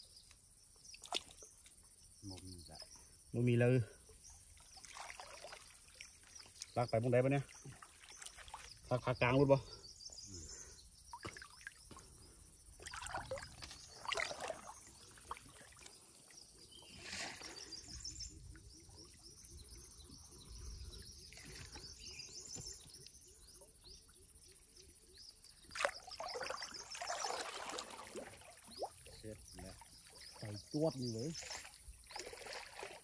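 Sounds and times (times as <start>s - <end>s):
bird chirping: 0.0s - 32.4s
water sloshing and splashing: 0.9s - 2.5s, 4.3s - 9.1s, 11.0s - 23.1s, 25.6s - 33.0s.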